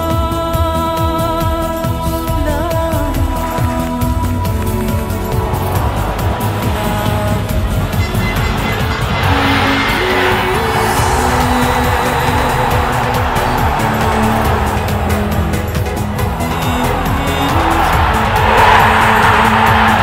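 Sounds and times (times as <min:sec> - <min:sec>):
music with steady beat: 0:00.0 - 0:20.0
stadium crowd cheering: 0:03.5 - 0:20.0.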